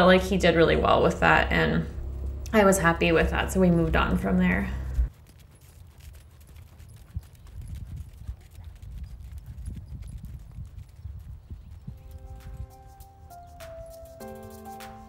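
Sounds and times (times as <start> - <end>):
horse hoofbeats on sand: 3.3 - 15.0
music with held notes: 12.0 - 15.0.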